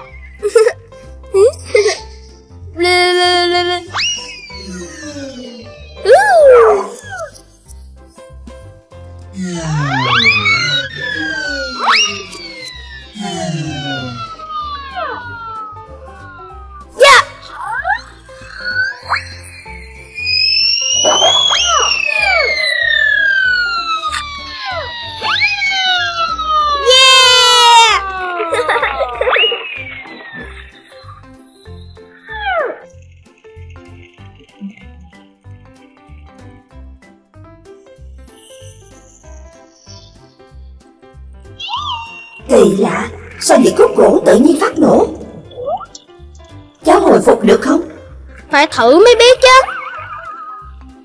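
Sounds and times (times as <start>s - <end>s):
cartoon whistles: 0.0s - 0.4s, 3.8s - 7.3s, 9.4s - 33.0s, 41.6s - 43.9s, 49.4s - 50.8s
children's background music: 0.0s - 51.0s
fast-warbling high tone: 3.9s - 7.0s, 9.4s - 27.2s, 29.2s - 32.9s, 41.6s - 46.0s.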